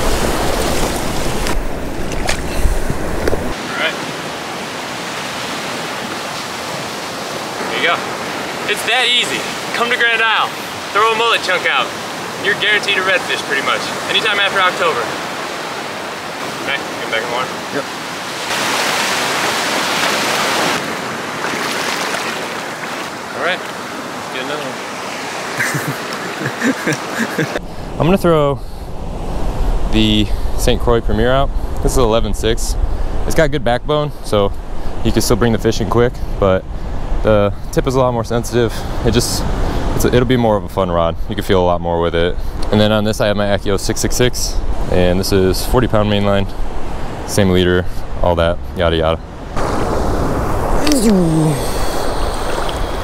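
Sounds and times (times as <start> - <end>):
surf breaking on beach: 0.0 - 27.6, 49.6 - 53.0
indistinct speech: 50.8 - 51.8
person grunting: 50.8 - 52.0.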